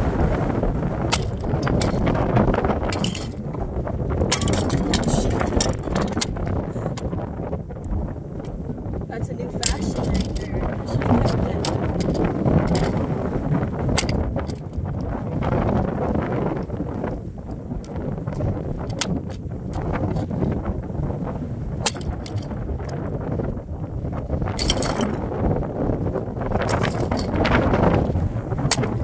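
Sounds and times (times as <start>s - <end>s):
wind buffeting microphone: 0.0s - 29.0s
plastic and metal crushed underfoot: 2.9s - 3.4s, 4.2s - 7.1s.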